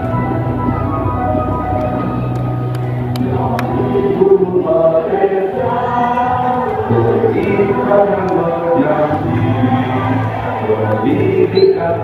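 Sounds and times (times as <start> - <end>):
group singing slow song: 0.0 - 12.0
musical accompaniment: 0.0 - 12.0.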